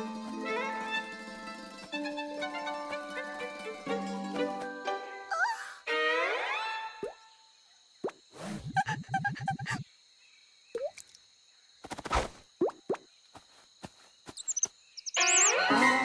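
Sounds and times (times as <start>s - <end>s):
rapid rattling pulses: 0.0s - 4.4s
cartoon plops and clicks: 10.8s - 11.2s.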